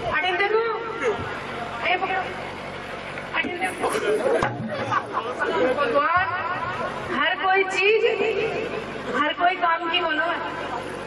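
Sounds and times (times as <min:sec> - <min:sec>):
crowd chatter: 0:00.8 - 0:09.4, 0:10.0 - 0:11.0.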